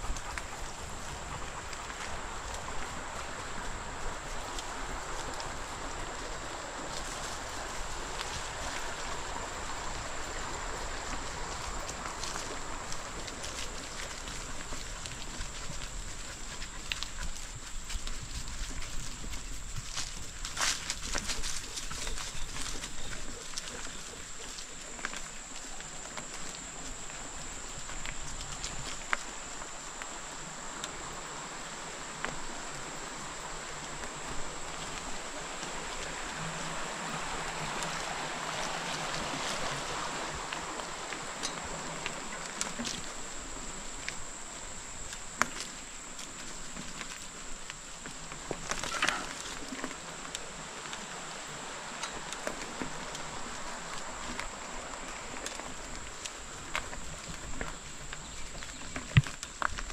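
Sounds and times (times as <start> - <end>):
bicycle tyres crunching on dirt: 0.0 - 59.9.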